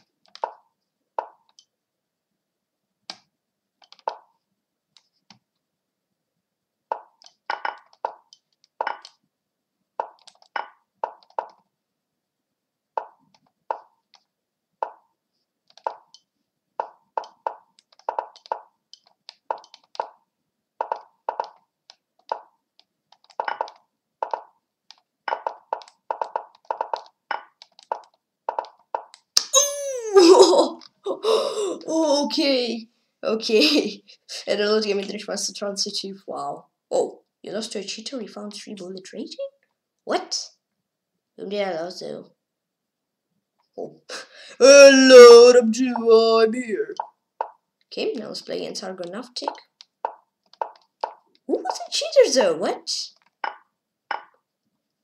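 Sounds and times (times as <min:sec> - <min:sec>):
loud vocal outburst: 0:29.5 - 0:30.4, 0:44.6 - 0:45.7.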